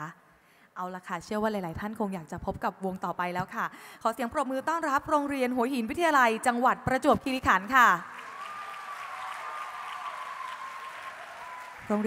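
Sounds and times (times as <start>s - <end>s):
audience applauding: 8.1s - 12.0s.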